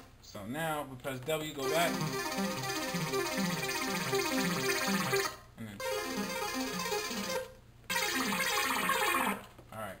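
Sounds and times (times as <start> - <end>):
synthesizer arpeggio: 1.6 - 9.4.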